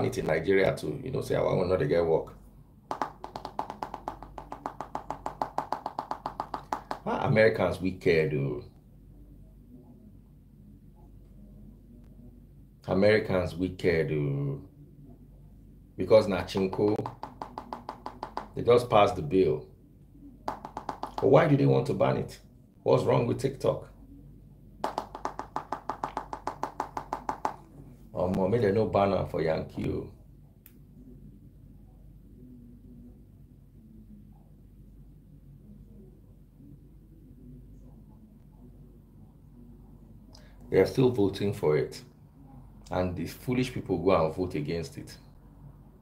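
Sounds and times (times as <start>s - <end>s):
rapid tapping on smartphone: 2.9s - 7.2s, 16.4s - 18.6s, 20.5s - 21.5s, 24.8s - 27.7s.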